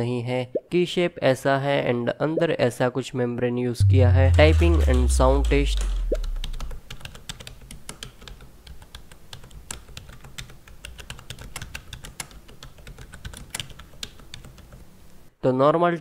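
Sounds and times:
low background sound: 0:03.8 - 0:06.9.

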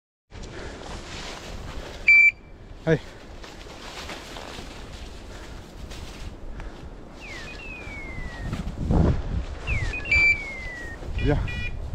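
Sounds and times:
footsteps through dry grass: 0:00.3 - 0:11.9
electronic beep: 0:02.1 - 0:02.5, 0:09.9 - 0:11.8
man calling: 0:09.7 - 0:11.9.

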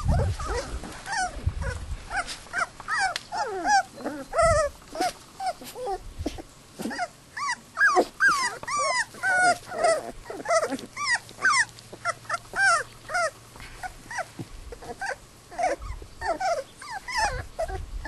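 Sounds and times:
puppies whining and yipping: 0:00.0 - 0:18.0.

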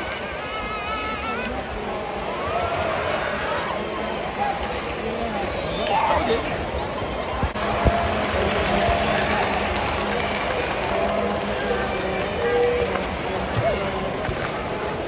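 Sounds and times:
crowd chatter: 0:00.0 - 0:15.0.

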